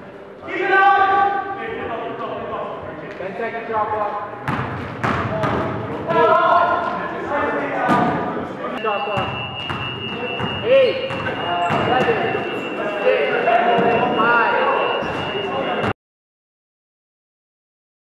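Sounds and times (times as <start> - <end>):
ball bouncing on wooden court: 4.4 - 6.2, 9.2 - 12.5
players calling out: 5.2 - 16.0.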